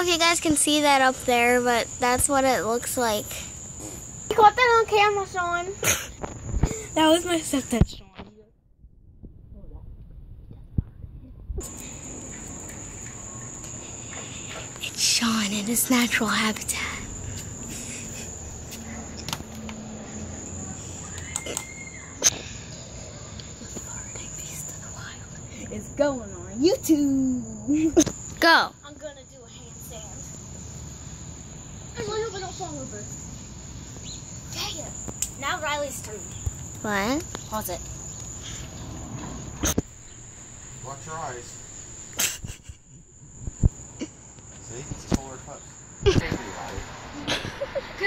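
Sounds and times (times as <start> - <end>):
insects trilling: 0.0 - 8.2, 11.6 - 48.0.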